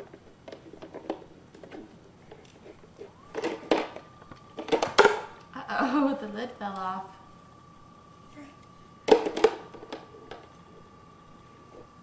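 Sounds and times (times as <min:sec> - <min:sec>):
faint steady high tone: 0:03.6 - 0:09.0.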